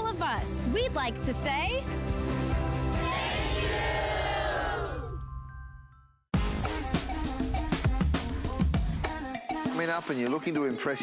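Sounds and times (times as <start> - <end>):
background music: 0.0 - 11.0
crowd cheering: 2.9 - 5.2.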